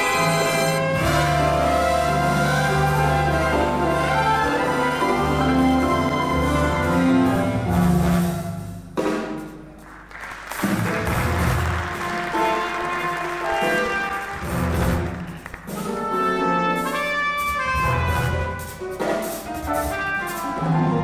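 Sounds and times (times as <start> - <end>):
trumpet playing: 0.0 - 8.4, 10.9 - 19.0
big band jazz: 0.0 - 21.0.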